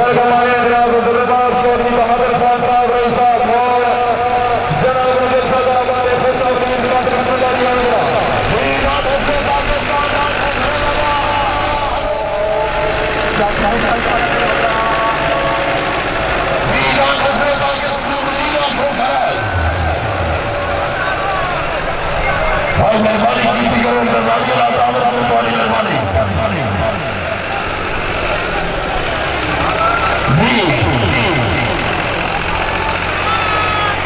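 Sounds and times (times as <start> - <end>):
large crowd noise: 0.0 - 34.0
tractor engines running: 0.0 - 34.0.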